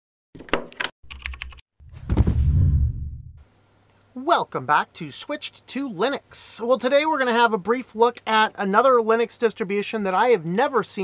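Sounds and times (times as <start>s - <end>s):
computer keyboard typing: 1.1s - 1.6s
deep thud with rumble: 1.9s - 3.4s.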